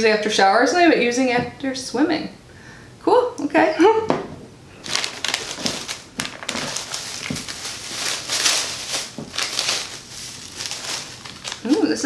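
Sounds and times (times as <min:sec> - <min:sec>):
packaging crinkling: 0:04.8 - 0:12.0.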